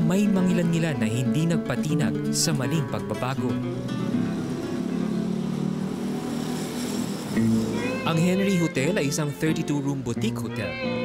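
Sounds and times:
vehicle engines running: 0:02.5 - 0:09.1.

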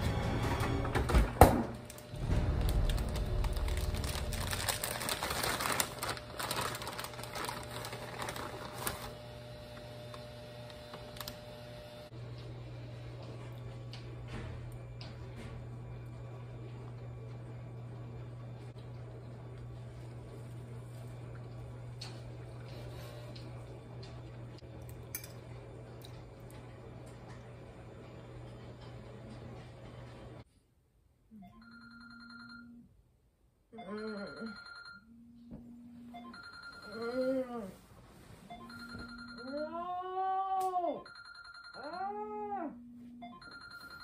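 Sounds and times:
phone alarm ringing: 0:31.4 - 0:32.9, 0:33.8 - 0:35.1, 0:36.1 - 0:37.5, 0:38.5 - 0:39.8, 0:41.0 - 0:42.0, 0:43.2 - 0:44.0.

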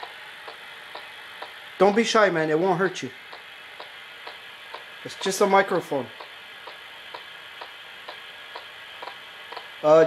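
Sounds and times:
faint ticking: 0:00.0 - 0:09.8
steady hiss: 0:00.0 - 0:10.0.

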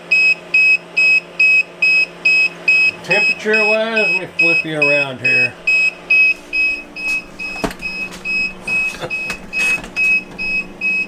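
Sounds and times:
steady low hum: 0:00.0 - 0:11.0
alarm beeping: 0:00.1 - 0:11.0
handling knocks: 0:07.0 - 0:10.6.

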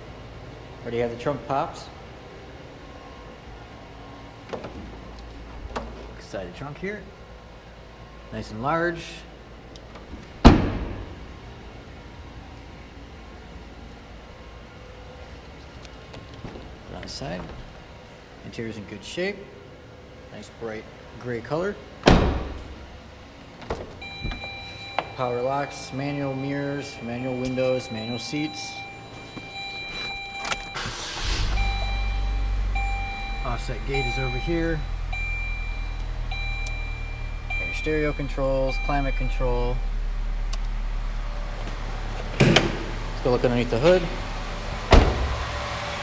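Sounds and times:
car door slamming: 0:10.0 - 0:11.2, 0:22.0 - 0:22.8, 0:23.6 - 0:25.1, 0:42.2 - 0:43.0, 0:44.8 - 0:45.5
car door opening click: 0:42.3 - 0:42.9.

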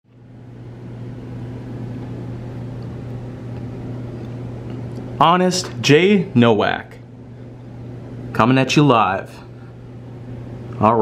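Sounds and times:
low machine hum with hiss: 0:00.1 - 0:11.0.

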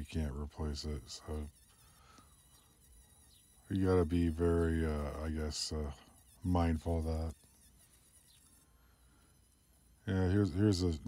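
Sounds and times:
rotary tool whining: 0:00.0 - 0:11.0.

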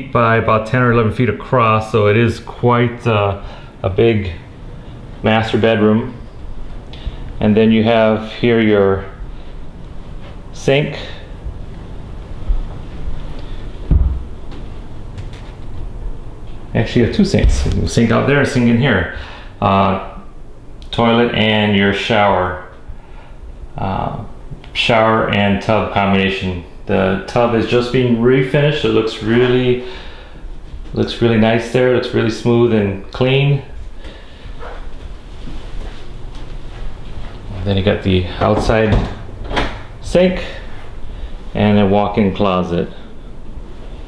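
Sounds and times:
footsteps: 0:09.2 - 0:10.6, 0:11.4 - 0:16.7, 0:33.8 - 0:37.6.

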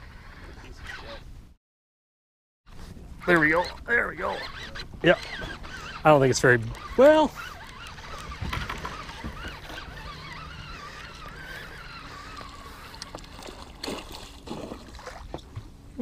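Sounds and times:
water sloshing: 0:02.7 - 0:15.9
fish splashing at water surface: 0:10.8 - 0:15.4.

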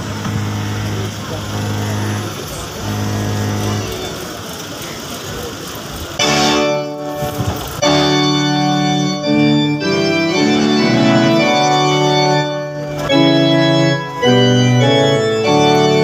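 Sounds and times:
keyboard chords: 0:00.0 - 0:05.0, 0:05.8 - 0:16.0
murmur of voices: 0:00.0 - 0:16.0.

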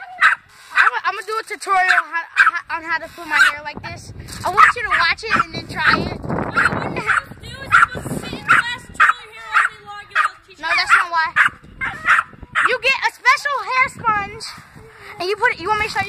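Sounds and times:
dog barking and yipping: 0:00.0 - 0:01.0, 0:01.8 - 0:02.7, 0:03.3 - 0:03.6, 0:04.6 - 0:12.8
children's voices: 0:00.0 - 0:16.0.

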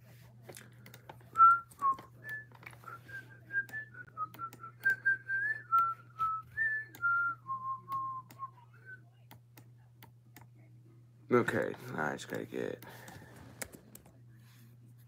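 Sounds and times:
person whistling a tune: 0:01.3 - 0:08.5.

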